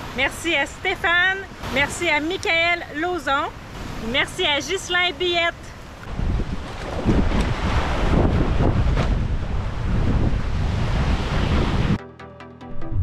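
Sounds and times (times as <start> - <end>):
surf washing on beach: 0.0 - 12.0
wind buffeting microphone: 1.5 - 12.0.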